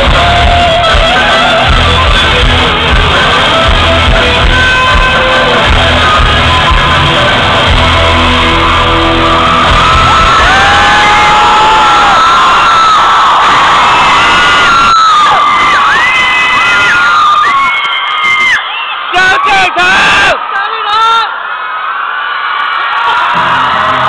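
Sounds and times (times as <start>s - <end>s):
loud live concert music: 0.0s - 22.0s, 22.7s - 24.0s
crowd screaming and cheering: 0.0s - 24.0s.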